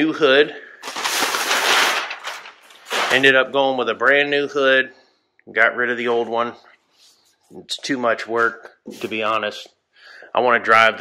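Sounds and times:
masking paper rustling: 0.8 - 4.3, 8.2 - 9.6.

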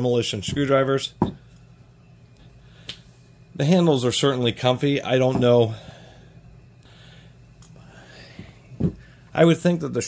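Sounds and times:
quiet handling noise: 5.1 - 5.7.

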